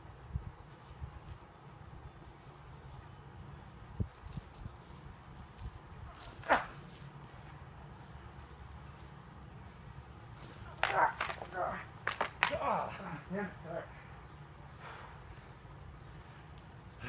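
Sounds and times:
short cries and sharp sounds: 6.1 - 7.0, 10.5 - 14.0
person shouting: 10.8 - 11.9.

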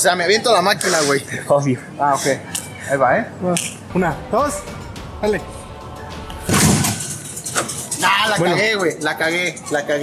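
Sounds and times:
faint electronic arcade music: 3.8 - 10.0.

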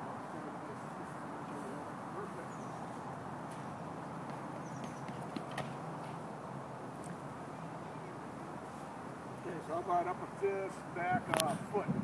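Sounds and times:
outdoor noise: 0.0 - 12.0
footfalls on rubber track: 4.3 - 6.2.

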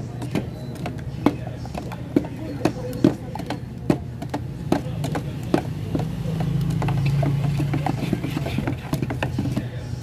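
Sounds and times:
sticks knocking against metal cans: 0.0 - 9.8.

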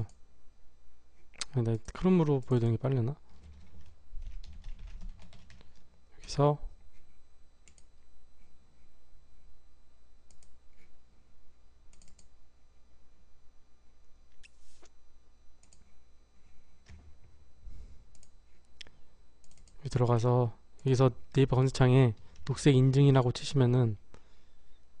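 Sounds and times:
low steady hum: 0.0 - 25.0
computer mouse clicks: 7.6 - 7.9, 10.3 - 10.6, 11.9 - 12.3, 15.6 - 15.9, 18.1 - 18.4, 19.4 - 19.8.

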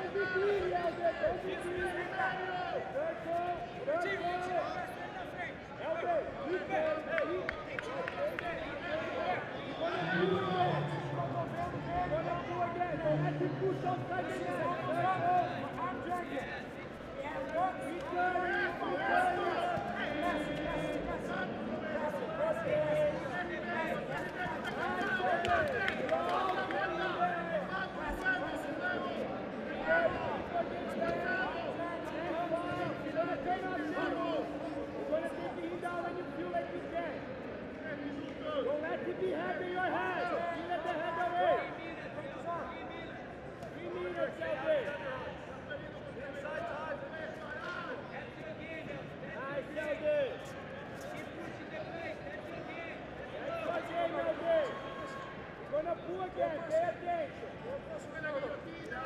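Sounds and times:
crowd chatter: 0.0 - 59.0
voices shouting and talking: 0.0 - 59.0.

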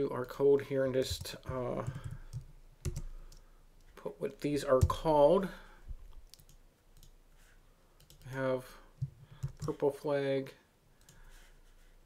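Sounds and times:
computer mouse clicks: 1.2 - 3.9, 8.0 - 8.4.

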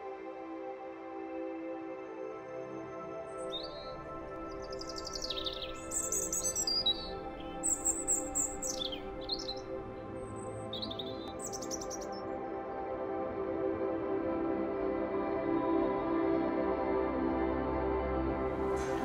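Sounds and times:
ambient music with sustained tones: 0.0 - 19.0
birds chirping: 3.4 - 12.2.

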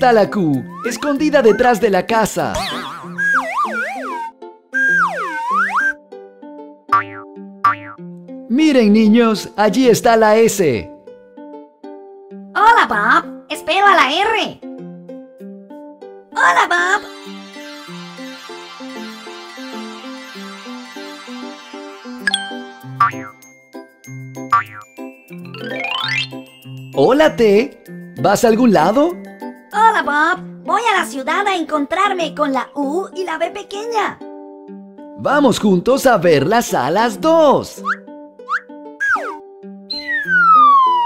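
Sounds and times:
children's plucked background music: 0.0 - 41.0
cartoon swooping glide: 2.6 - 6.0, 37.8 - 41.0
rising whistle-like glide: 2.7 - 6.0, 17.1 - 22.9, 39.9 - 41.0
sharp ding: 22.3 - 23.5.

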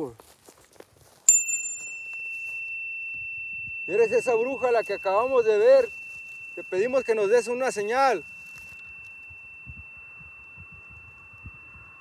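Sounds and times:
tuning fork ringing: 1.3 - 12.0.

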